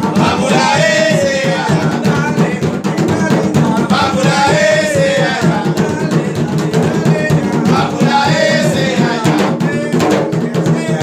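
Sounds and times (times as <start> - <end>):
hand drums played rhythmically: 0.0 - 11.0.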